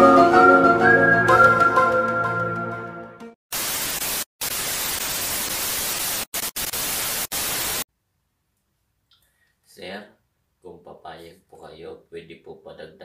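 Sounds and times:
flute tune: 0.0s - 3.0s
static hiss: 3.5s - 7.9s.

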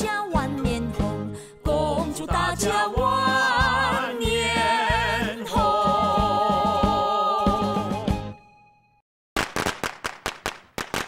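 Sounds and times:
firecrackers cracking: 9.4s - 11.0s.

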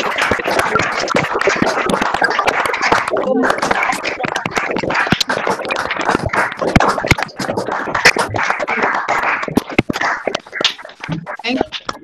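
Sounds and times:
applause over a video call: 0.0s - 12.0s.

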